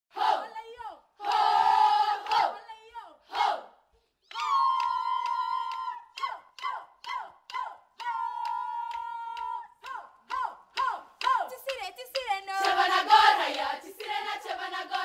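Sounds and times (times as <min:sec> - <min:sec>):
girls choir chanting: 0:00.1 - 0:03.8, 0:05.7 - 0:15.0.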